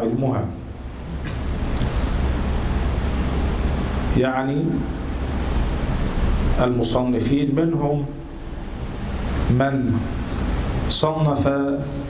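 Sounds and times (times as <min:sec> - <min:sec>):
speech: 0:00.0 - 0:00.6, 0:04.2 - 0:04.9, 0:06.6 - 0:08.2, 0:09.5 - 0:10.1, 0:10.9 - 0:12.0
low rumble with hiss: 0:00.0 - 0:12.0.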